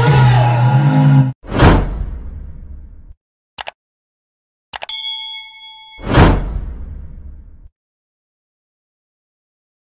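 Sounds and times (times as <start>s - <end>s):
notification bell ding: 4.8s - 6.4s.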